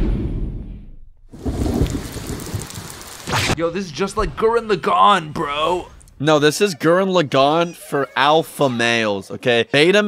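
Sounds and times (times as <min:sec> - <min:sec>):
low rumble of thunder: 0:01.3 - 0:03.2
heavy rain: 0:01.4 - 0:04.7.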